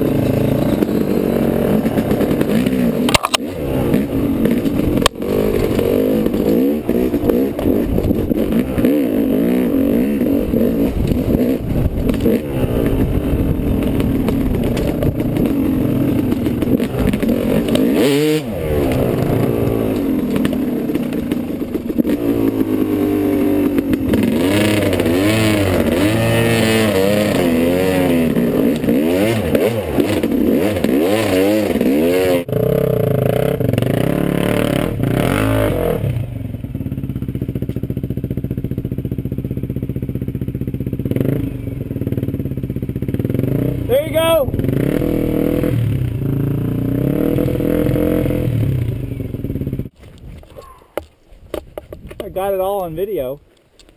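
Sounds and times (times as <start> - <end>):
dirt bike engines revving: 0.0 - 36.6, 40.8 - 49.9, 52.2 - 53.4.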